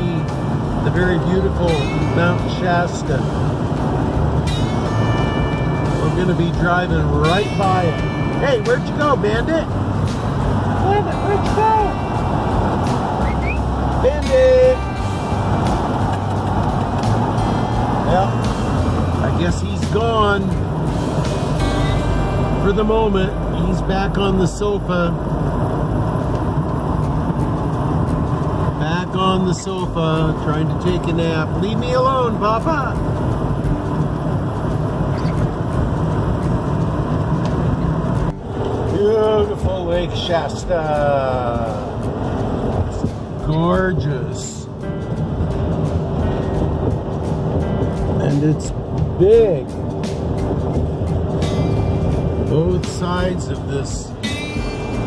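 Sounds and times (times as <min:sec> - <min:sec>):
vehicle driving drone inside cab: 0:00.0 - 0:55.0.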